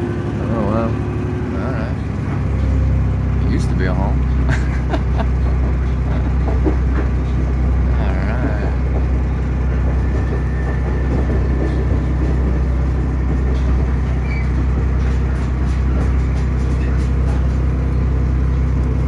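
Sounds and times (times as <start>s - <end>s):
railcar engine hum: 0.0s - 19.0s
rail clicks: 1.8s - 19.0s.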